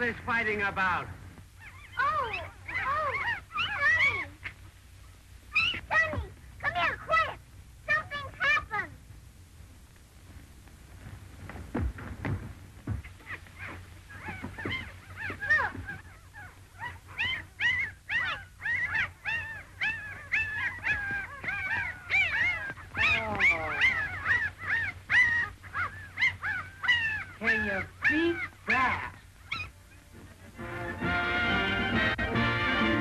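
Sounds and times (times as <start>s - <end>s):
puppies whimpering and squealing: 1.6s - 4.6s, 5.5s - 8.6s, 12.9s - 32.1s.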